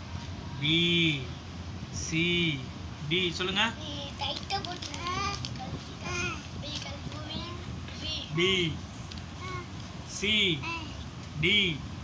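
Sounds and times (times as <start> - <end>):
paper pages rustling: 4.2 - 5.9.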